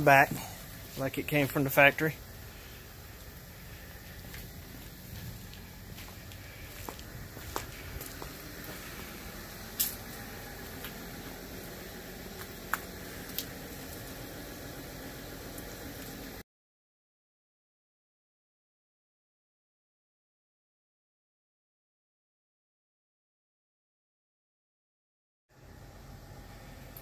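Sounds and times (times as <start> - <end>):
outdoor background noise: 0.0 - 16.4, 25.5 - 27.0.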